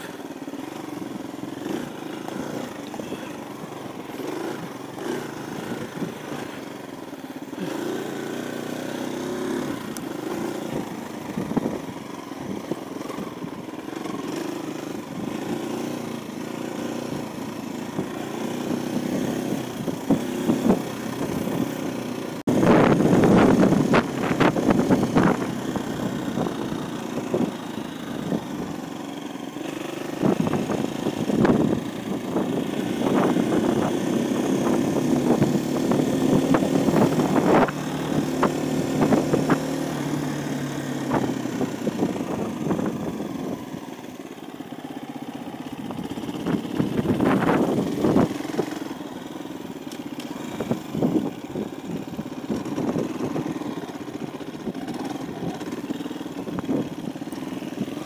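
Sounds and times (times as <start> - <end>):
motorcycle engine running: 0.0 - 58.0.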